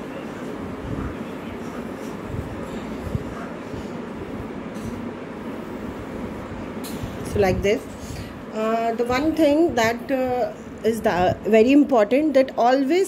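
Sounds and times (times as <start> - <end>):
low rumbling background noise: 0.0 - 13.0.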